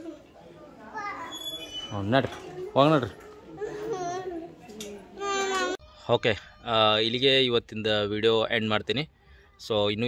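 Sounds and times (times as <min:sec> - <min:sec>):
children's voices: 0:00.0 - 0:01.6, 0:02.5 - 0:05.8
people chattering: 0:00.0 - 0:07.4.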